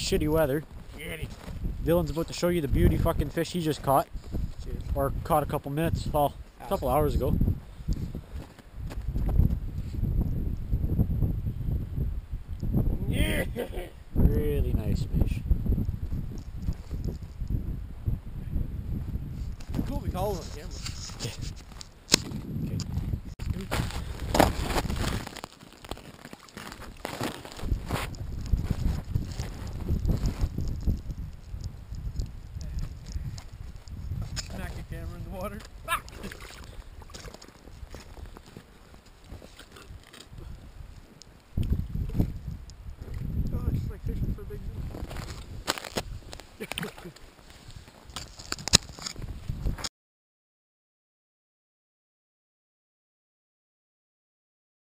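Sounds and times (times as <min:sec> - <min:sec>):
wind buffeting microphone: 0:00.0 - 0:25.3, 0:27.5 - 0:49.9.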